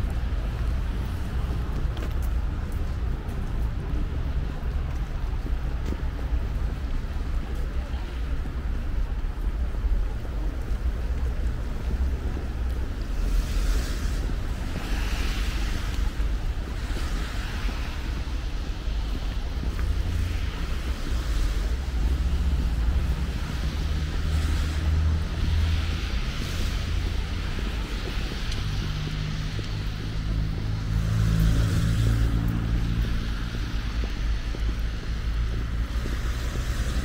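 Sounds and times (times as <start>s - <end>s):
low rumble of engines: 0.0s - 37.0s
tyres hissing on wet asphalt: 9.5s - 37.0s.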